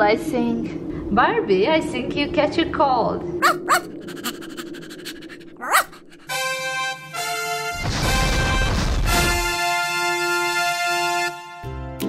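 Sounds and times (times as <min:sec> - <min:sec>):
short high dog yelp: 0:03.4 - 0:04.6, 0:05.6 - 0:06.1.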